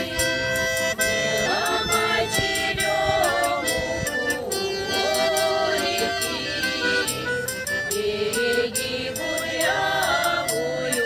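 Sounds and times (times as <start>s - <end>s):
accordion playing chords: 0.0s - 11.0s
women singing folk song: 0.0s - 11.0s.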